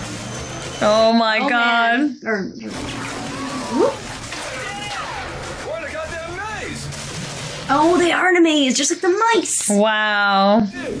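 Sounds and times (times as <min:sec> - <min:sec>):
action film music: 0:02.7 - 0:08.2.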